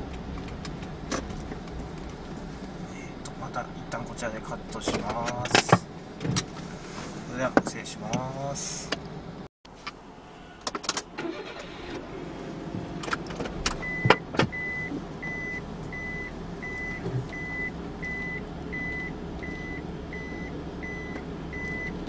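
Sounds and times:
car engine idling: 0.0s - 22.0s
reverse warning beeps: 13.8s - 21.9s.

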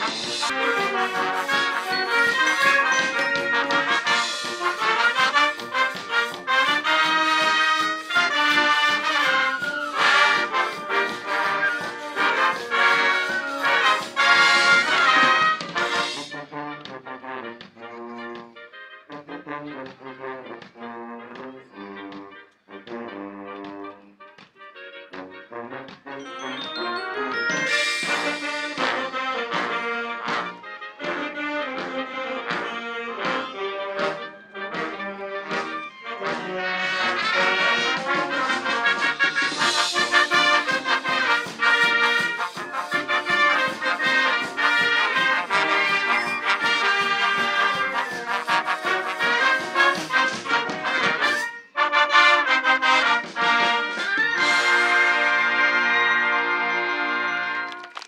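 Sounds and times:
marching band playing: 0.0s - 58.0s.

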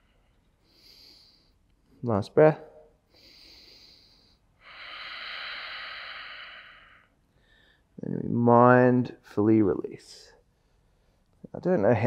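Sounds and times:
man breathing: 0.0s - 2.0s, 3.0s - 8.0s.

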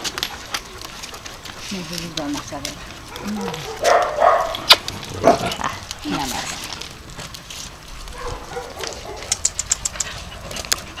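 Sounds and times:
people's voices: 5.4s - 6.8s
sharp clicks: 9.2s - 10.8s.

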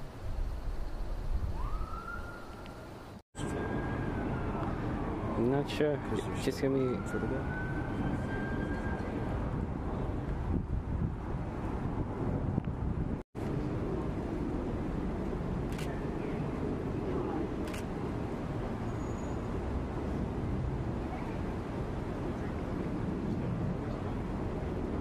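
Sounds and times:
traffic rumble and idling vehicles: 2.5s - 25.0s.

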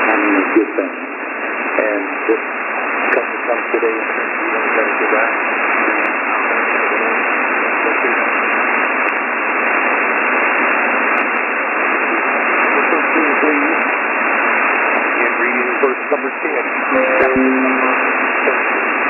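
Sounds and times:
faint preaching voice: 0.0s - 1.1s, 1.8s - 2.4s, 3.2s - 5.3s, 15.2s - 18.7s.

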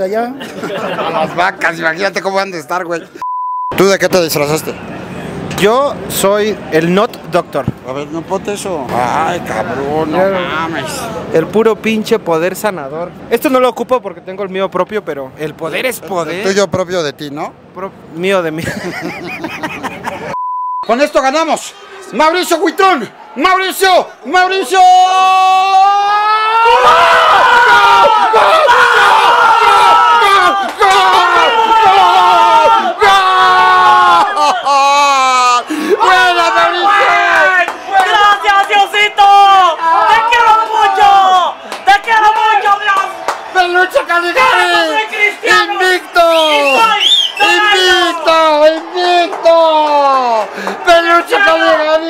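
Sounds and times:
men screaming and cheering: 21.3s - 52.0s
man yelling: 22.1s - 52.0s.

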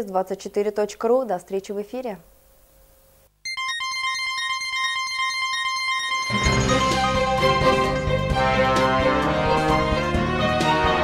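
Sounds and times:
electronic theme music: 3.5s - 11.0s.

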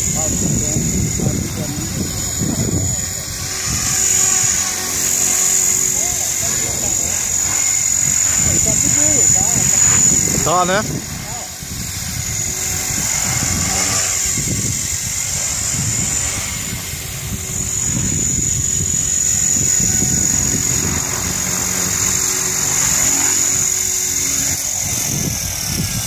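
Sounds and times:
rc helicopter motor whine: 0.0s - 26.0s
rotor blades rushing: 0.0s - 26.0s.

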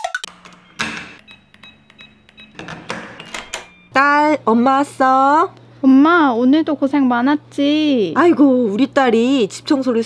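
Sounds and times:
door lock clicks: 0.4s - 3.7s
door rattling: 2.6s - 3.7s.

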